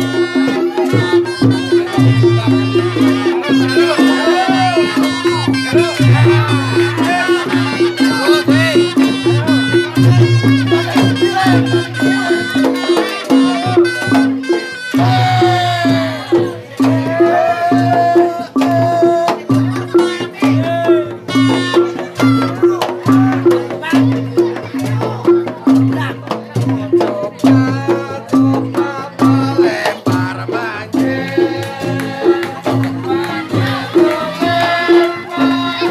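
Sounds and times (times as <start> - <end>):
wavering high melody: 0.0 - 24.5
gongs and drums beating: 0.0 - 35.9.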